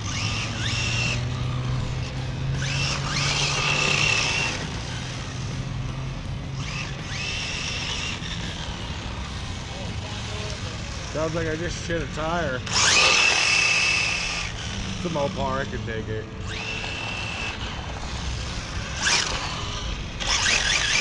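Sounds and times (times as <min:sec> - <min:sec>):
electric motors whining: 0:00.0 - 0:21.0
steady low hum: 0:00.0 - 0:21.0.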